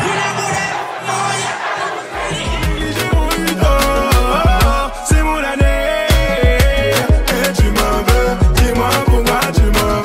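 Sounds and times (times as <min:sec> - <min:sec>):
crowd shouting and cheering: 0:00.0 - 0:10.0
dance music with bass drum: 0:02.1 - 0:10.0.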